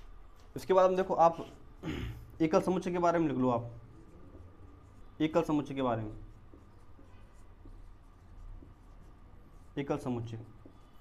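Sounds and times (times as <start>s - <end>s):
marker writing on whiteboard: 0.0s - 11.0s.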